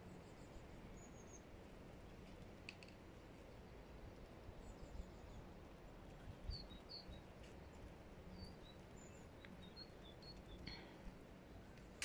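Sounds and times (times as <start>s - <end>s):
faint high bird chirps: 0.0s - 1.5s, 6.4s - 7.3s, 8.3s - 11.1s.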